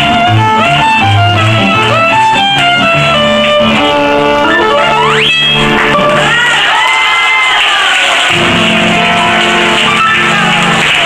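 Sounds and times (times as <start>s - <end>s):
klezmer band with violin: 0.0s - 6.6s
audience clapping along: 0.0s - 11.0s.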